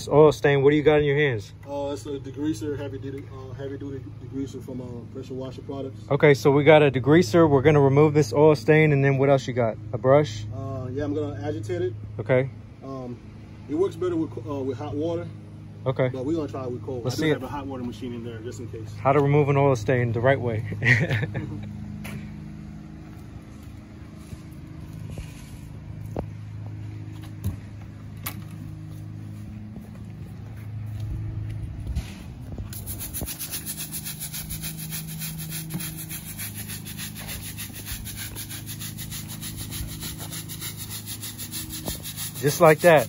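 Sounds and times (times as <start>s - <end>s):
brush scrubbing brick pavers: 32.4s - 43.0s.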